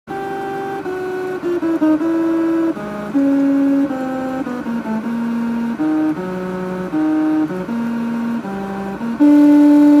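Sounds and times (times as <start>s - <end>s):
horn-like tones playing a tune: 0.1s - 10.0s.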